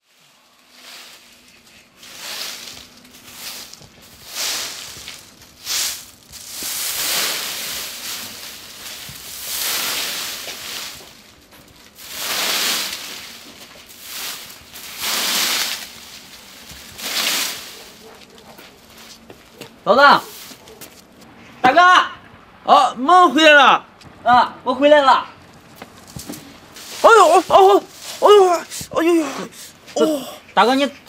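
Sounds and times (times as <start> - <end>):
twig broom sweeping: 0.0 - 21.5, 25.8 - 30.0.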